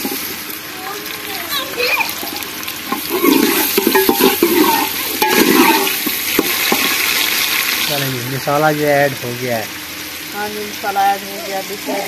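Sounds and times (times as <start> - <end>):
vegetables sizzling in hot fat: 0.0 - 12.0
ladle scraping a metal pot: 2.9 - 7.0.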